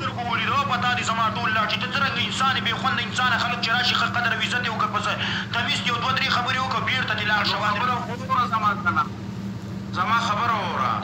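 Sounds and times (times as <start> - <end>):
man talking: 0.0 - 9.1, 9.9 - 11.0
steady low hum: 0.0 - 11.0.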